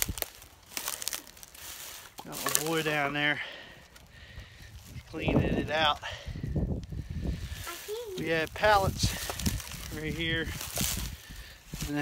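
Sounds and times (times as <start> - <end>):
dry grass crackling underfoot: 0.0 - 12.0.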